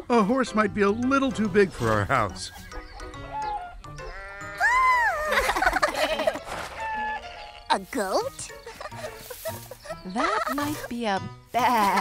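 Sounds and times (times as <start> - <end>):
light background music: 0.0 - 12.0
cartoon goat bleat: 4.0 - 5.1.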